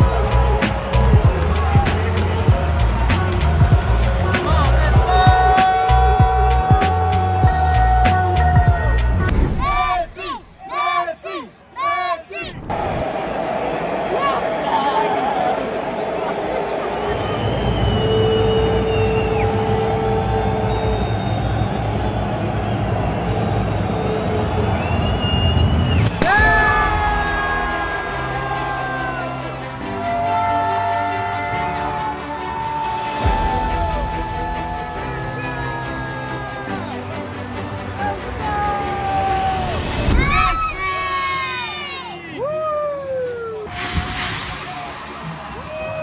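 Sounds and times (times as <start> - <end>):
stadium crowd noise: 0.0 - 46.0
children shouting high cheer: 4.4 - 16.0, 26.2 - 37.0, 38.0 - 44.2
shrill whistles: 16.0 - 27.0
celebratory horn tones: 43.7 - 46.0.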